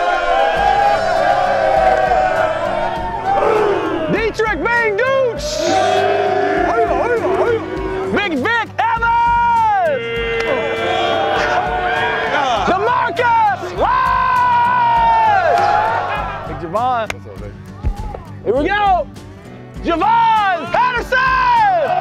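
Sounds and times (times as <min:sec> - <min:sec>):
drawn-out cheers: 0:00.0 - 0:08.1, 0:09.0 - 0:16.5
players yelling and whooping: 0:00.0 - 0:16.8, 0:20.0 - 0:22.0.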